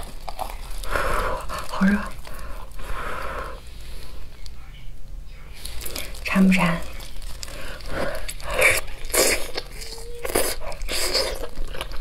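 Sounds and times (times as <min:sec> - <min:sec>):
chicken meat ripping: 0:00.0 - 0:02.4, 0:05.8 - 0:12.0
plastic gloves crinkling: 0:00.0 - 0:04.2, 0:05.5 - 0:12.0.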